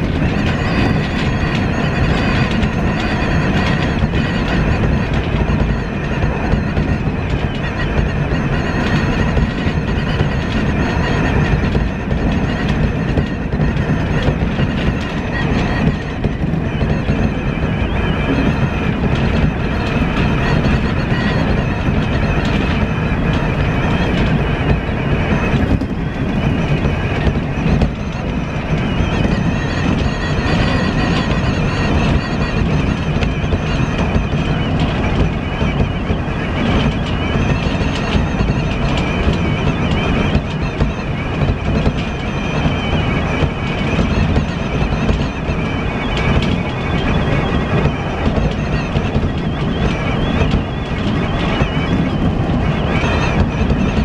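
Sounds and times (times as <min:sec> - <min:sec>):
steady high tones: 0:00.0 - 0:54.0
train wheels rumbling on rail: 0:00.0 - 0:54.0.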